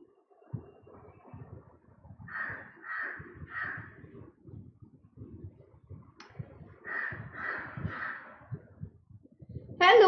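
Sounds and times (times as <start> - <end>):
bird cawing: 2.3 - 3.9, 6.8 - 8.4.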